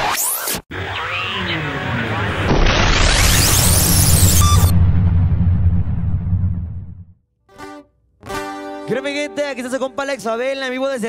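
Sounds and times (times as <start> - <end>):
rising whoosh: 1.7 - 7.1
deep booming rumble: 2.0 - 7.2.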